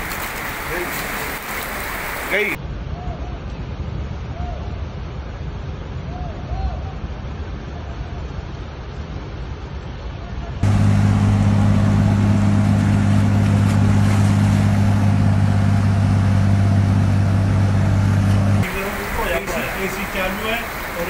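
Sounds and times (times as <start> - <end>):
rushing floodwater: 0.0 - 2.6, 7.0 - 21.0
voices: 0.4 - 2.6, 18.6 - 21.0
low motor hum: 10.6 - 19.1.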